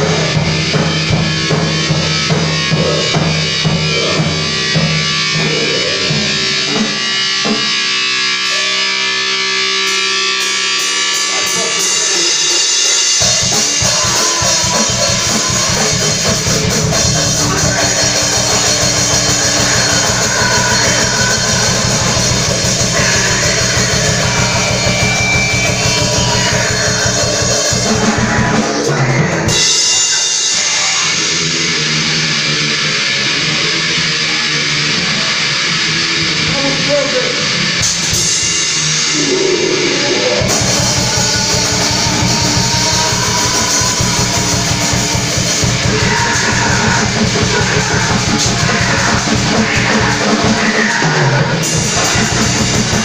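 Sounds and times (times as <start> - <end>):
fast drumming: 0.0 - 8.7, 10.4 - 30.9, 37.8 - 53.0
electric guitar: 0.0 - 53.0
rock band playing: 0.0 - 53.0.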